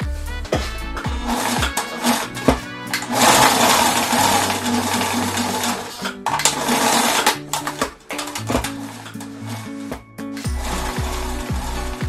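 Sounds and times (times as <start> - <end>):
background music: 0.0 - 12.0
sewing machine stitching: 1.3 - 12.0.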